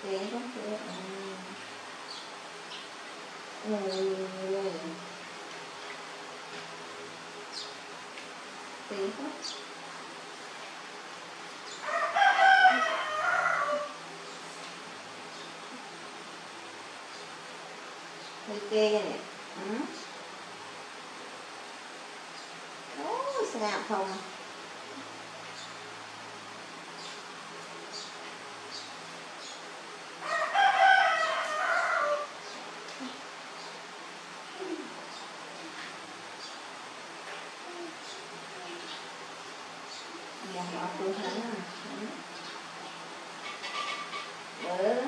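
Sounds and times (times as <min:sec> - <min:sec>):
rooster crowing: 0:11.8 - 0:14.0, 0:30.2 - 0:32.4.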